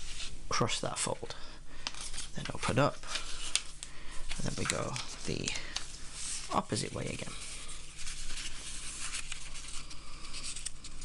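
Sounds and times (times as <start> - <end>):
paper crinkles: 1.9 - 11.0
paper rustling as folded: 1.9 - 11.0.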